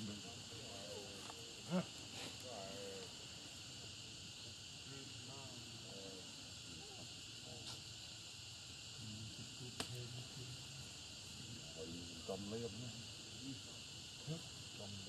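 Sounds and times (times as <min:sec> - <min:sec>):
faint voices: 0:00.0 - 0:03.2, 0:09.0 - 0:15.0
insects buzzing: 0:00.0 - 0:15.0.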